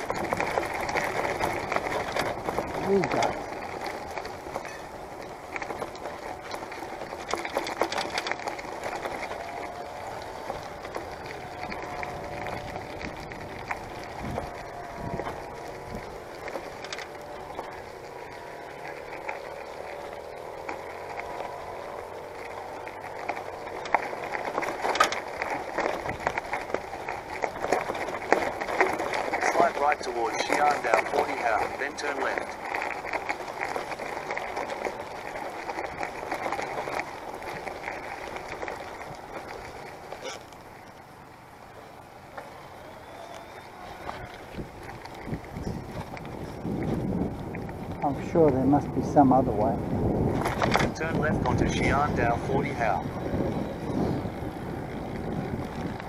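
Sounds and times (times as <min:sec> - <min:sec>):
bicycle tyres crunching on gravel: 0:00.0 - 0:56.0
bike rattling clicks and knocks: 0:00.0 - 0:56.0.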